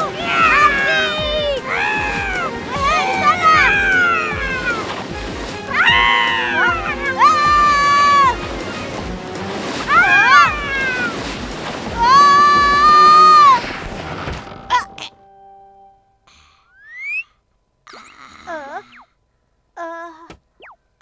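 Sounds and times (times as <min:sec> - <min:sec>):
high-pitched cartoon cries: 0:00.0 - 0:04.9, 0:05.7 - 0:08.4, 0:09.9 - 0:11.2
background music with steady beat: 0:00.0 - 0:13.5.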